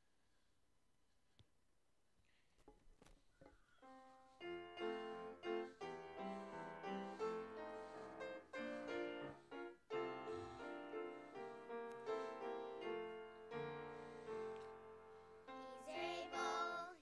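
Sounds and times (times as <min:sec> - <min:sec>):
piano playing chords: 0:03.9 - 0:17.0.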